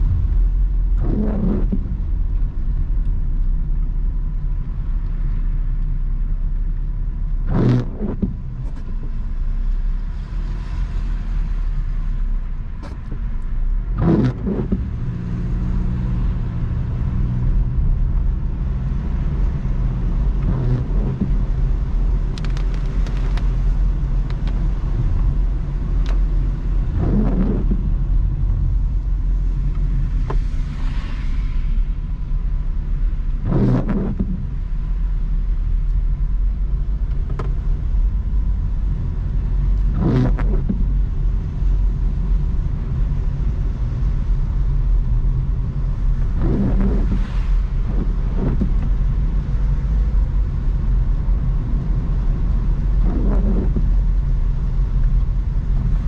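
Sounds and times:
windshield wiper sweeping: 0.0s - 2.8s, 7.4s - 9.3s, 13.9s - 56.0s
car engine rumble: 0.0s - 56.0s
tyres on a wet road: 0.0s - 56.0s.

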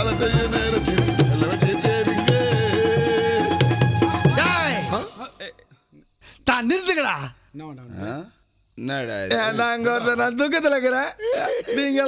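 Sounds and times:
men's voices: 0.0s - 12.0s
crickets chirping: 0.9s - 12.0s
man calling loudly: 4.3s - 5.8s, 6.4s - 12.0s.

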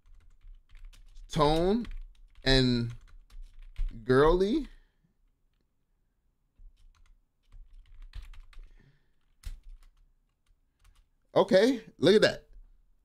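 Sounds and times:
typing on a keyboard: 0.0s - 4.7s, 6.6s - 11.1s.

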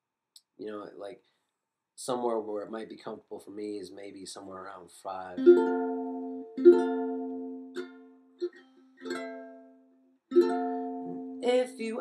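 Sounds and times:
ukulele strummed chords: 5.4s - 12.0s.

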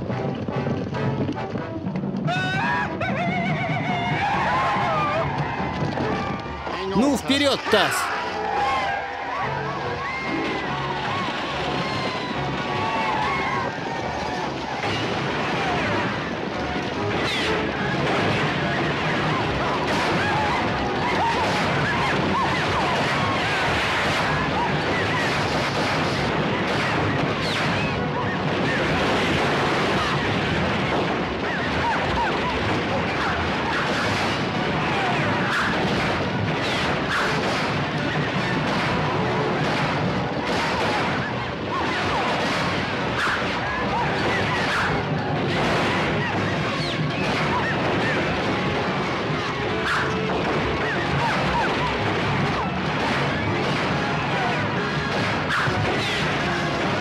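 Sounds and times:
galloping horses: 0.0s - 6.4s
riders yelling: 6.8s - 8.1s.

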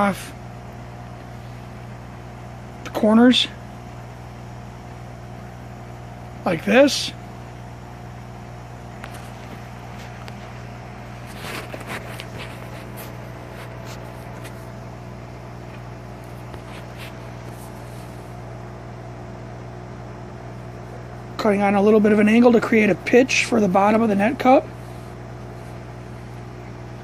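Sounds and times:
low mechanical hum: 0.0s - 27.0s
faint scratches and clicks: 11.2s - 14.7s, 15.6s - 17.9s.

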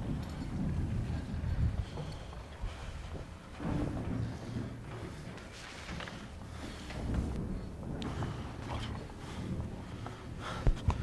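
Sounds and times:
low rumbling thunder: 0.0s - 5.3s
wind: 0.0s - 11.0s.

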